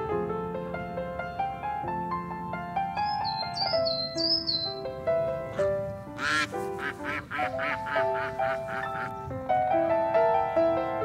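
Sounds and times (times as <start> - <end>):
soft piano music: 0.0 - 11.0
cranes calling: 5.4 - 9.3.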